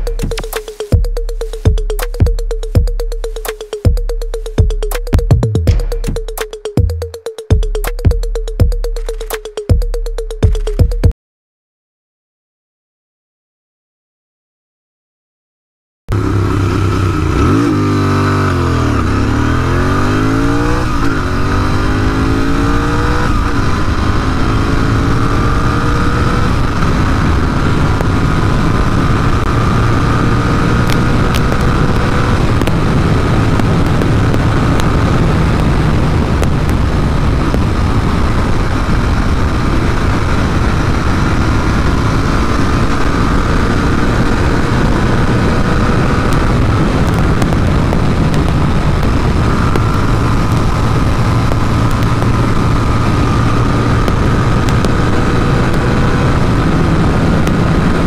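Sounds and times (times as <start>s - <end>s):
motorcycle engine accelerating: 0.0s - 11.1s, 16.1s - 58.0s
heavy wind noise: 16.2s - 58.0s.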